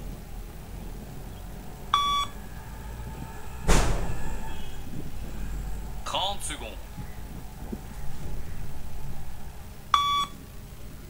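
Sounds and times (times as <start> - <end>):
loud rush of noise: 0.0 - 11.0
electronic beep: 1.9 - 2.4, 9.9 - 10.4.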